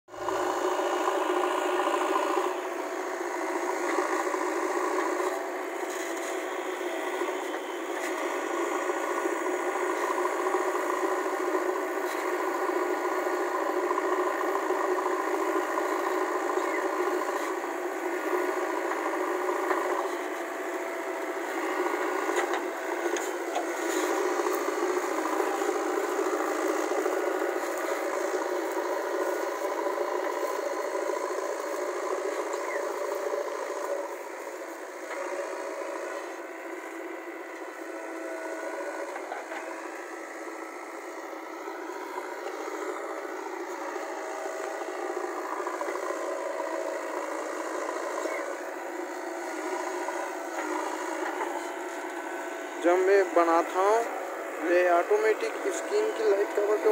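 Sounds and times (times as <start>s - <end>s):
diesel engine under load: 0.1s - 56.9s.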